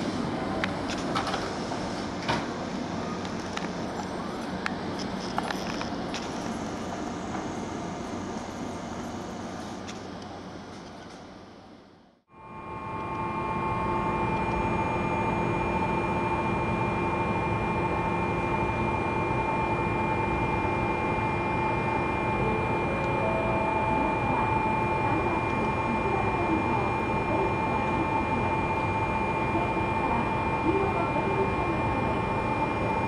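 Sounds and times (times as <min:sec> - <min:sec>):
train interior hum and rush: 0:00.0 - 0:33.0
high electrical whining tones: 0:12.4 - 0:33.0.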